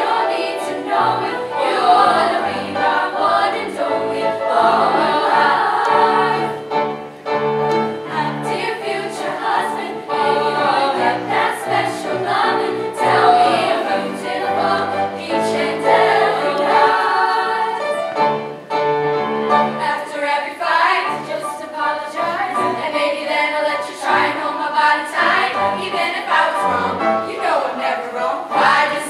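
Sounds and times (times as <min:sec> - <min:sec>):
girls' choir singing in harmony: 0:00.0 - 0:29.0.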